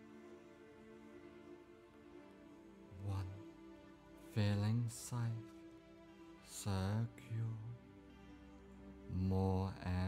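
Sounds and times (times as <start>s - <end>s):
low voice chanting on one note: 3.0s - 3.4s, 6.6s - 7.8s.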